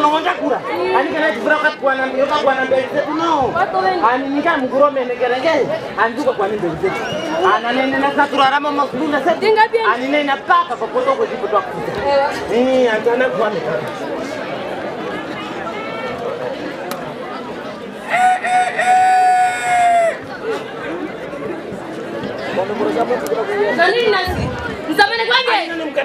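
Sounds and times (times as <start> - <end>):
crowd chatter: 0.0 - 26.0
rooster-like crow: 18.1 - 20.2.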